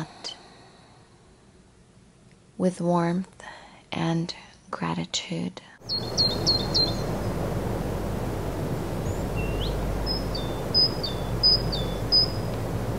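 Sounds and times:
outdoor background noise: 0.0s - 12.9s
birds chirping: 5.8s - 12.9s.

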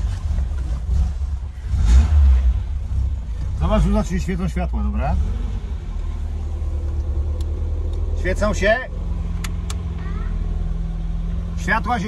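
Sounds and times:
car engine idling: 0.0s - 12.0s
dashboard switch clicks: 9.4s - 9.8s.

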